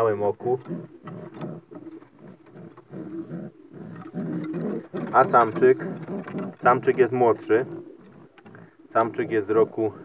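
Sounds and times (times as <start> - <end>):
pigeons cooing: 0.0 - 10.0.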